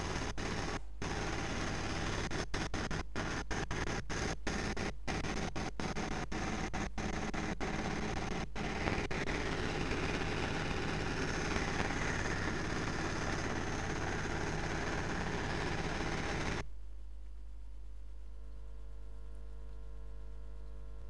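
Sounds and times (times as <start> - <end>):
boat engine running: 0.0 - 16.6.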